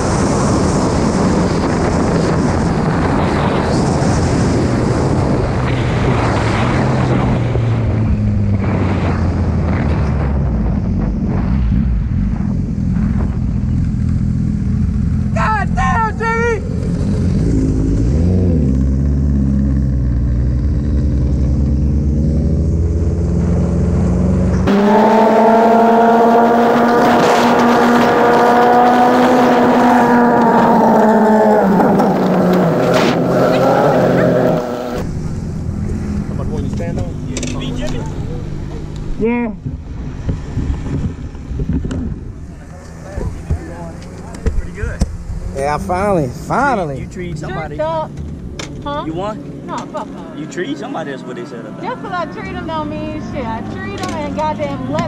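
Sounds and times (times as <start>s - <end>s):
wind rush on camera: 0.0s - 14.3s, 26.0s - 47.4s
motorcycle engine rumble: 0.0s - 55.0s
steady engine tone: 2.2s - 55.0s.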